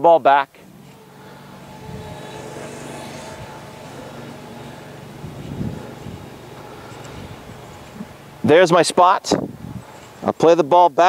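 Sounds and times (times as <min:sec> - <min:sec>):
engine hum: 0:00.6 - 0:10.2
short low sound: 0:00.7 - 0:08.5.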